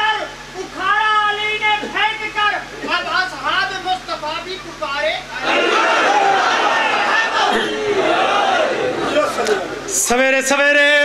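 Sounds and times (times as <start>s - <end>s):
crowd of men shouting: 5.4s - 9.9s.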